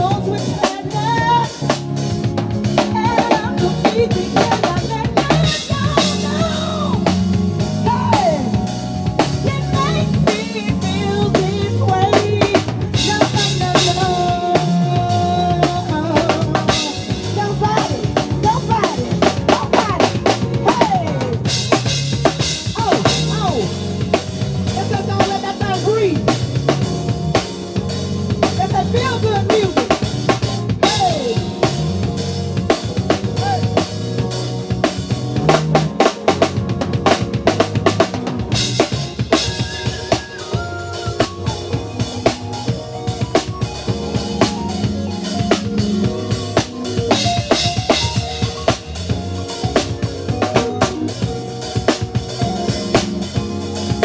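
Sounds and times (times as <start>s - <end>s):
drum kit beat: 0.0s - 54.0s
live band playing: 0.0s - 54.0s.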